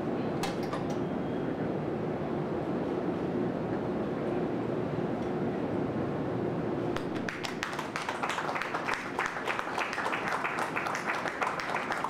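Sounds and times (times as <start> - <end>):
steady low hum: 0.0 - 12.0
hand clapping: 7.0 - 12.0.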